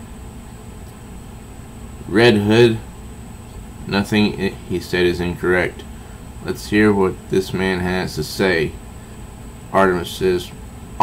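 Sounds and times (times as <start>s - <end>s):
even hiss: 0.0s - 11.0s
faint high whine: 0.0s - 11.0s.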